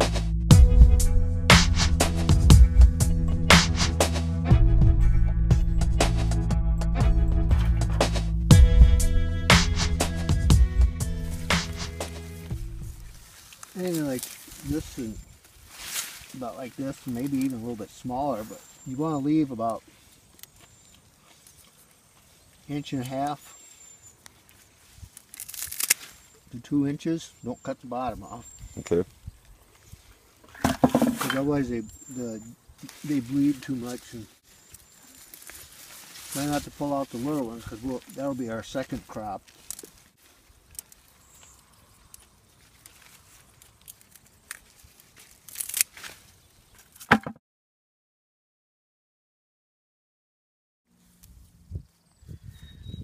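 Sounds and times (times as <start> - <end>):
leaves rustling and crackling: 11.0 - 47.1, 50.9 - 52.1
garden scissors snipping: 13.5 - 14.6, 25.1 - 26.2, 40.6 - 46.2
sharp knock: 47.1 - 47.4.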